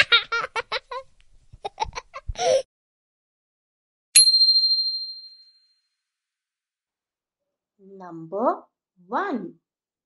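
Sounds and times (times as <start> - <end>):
high bell-like chime: 4.2 - 5.9.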